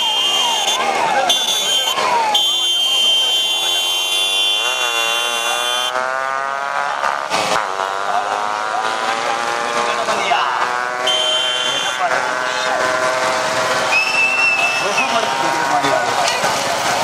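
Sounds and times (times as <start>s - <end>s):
high-pitched buzzing tone: 3.5s - 6.0s.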